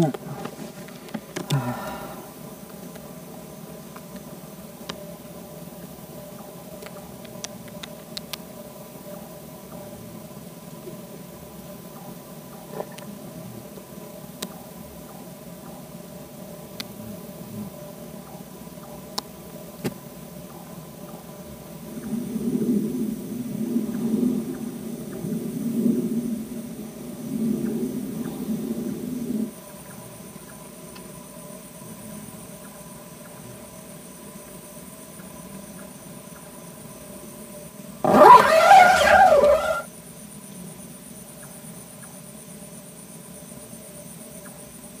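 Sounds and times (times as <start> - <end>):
insects trilling: 0.0 - 45.0.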